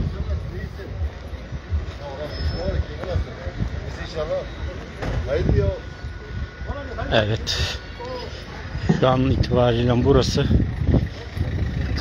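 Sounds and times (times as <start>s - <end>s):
steady low rumble: 0.0s - 2.2s, 2.8s - 12.0s
distant people talking: 0.0s - 12.0s.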